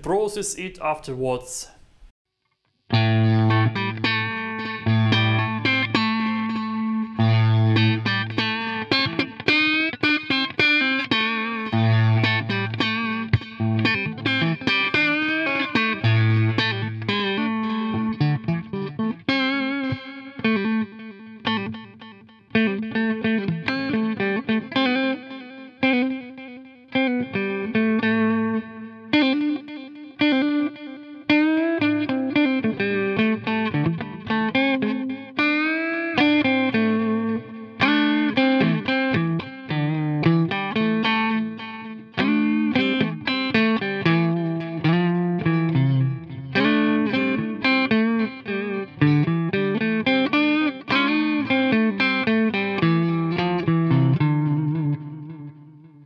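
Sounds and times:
electric guitar with delay: 2.9 - 56.0.

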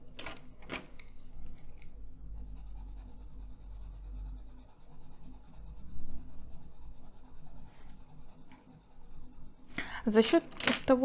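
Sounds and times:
pencil scratching on paper: 2.4 - 10.3.

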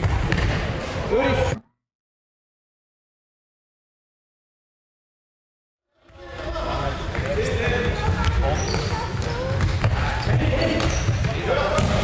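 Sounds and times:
ball kicked and bouncing on floor: 9.2 - 12.0.

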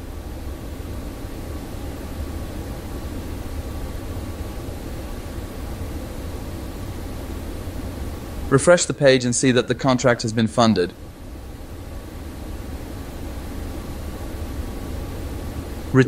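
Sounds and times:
faint steady tone: 0.0 - 16.0
steady hissing noise: 0.0 - 16.0.

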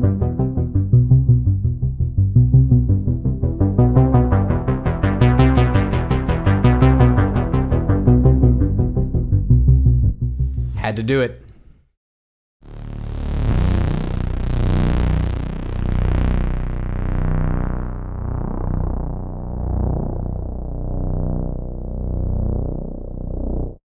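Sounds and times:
deep synth bass: 0.0 - 10.8, 12.6 - 23.8.

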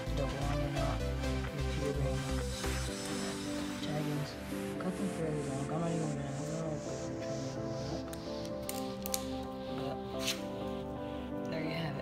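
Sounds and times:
background music: 0.0 - 12.0
scissors snipping fishing line: 8.4 - 9.5.

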